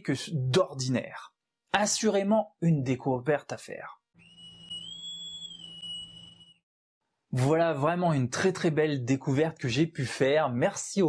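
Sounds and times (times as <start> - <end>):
high whistle-like tone: 4.2 - 6.7.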